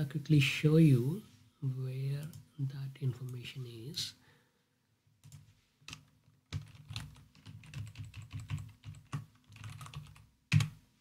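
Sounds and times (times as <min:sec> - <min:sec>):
typing on computer keyboard: 0:05.2 - 0:10.7.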